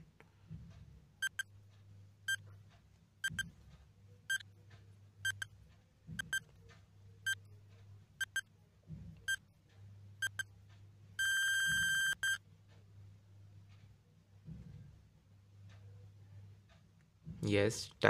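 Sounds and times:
faint low hum: 0.0 - 18.0
countdown timer beeping: 1.2 - 1.5, 3.2 - 3.5, 5.2 - 5.5, 6.2 - 6.4, 8.2 - 8.4, 10.2 - 10.5, 11.2 - 12.4
long steady beep: 11.2 - 12.4.

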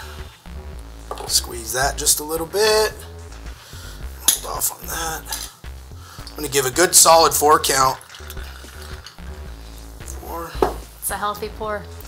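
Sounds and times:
liquid pouring over ice: 6.9 - 9.3.

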